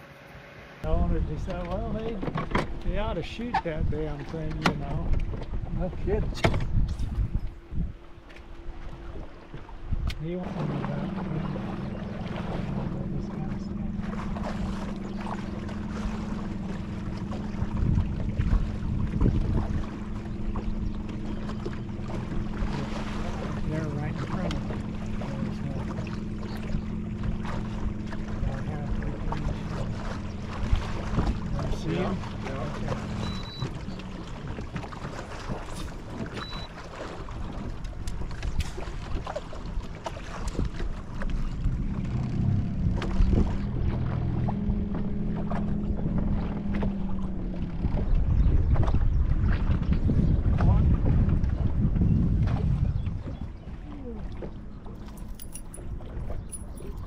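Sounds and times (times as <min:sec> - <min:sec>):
low motor hum: 0:00.0 - 0:57.0
water lapping against boat hull: 0:00.8 - 0:57.0
wind buffeting microphone: 0:00.8 - 0:57.0.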